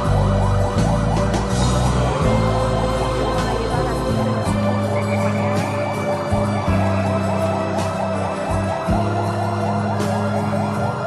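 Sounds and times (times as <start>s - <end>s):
background music: 0.0s - 11.0s
siren yelping: 0.0s - 11.0s.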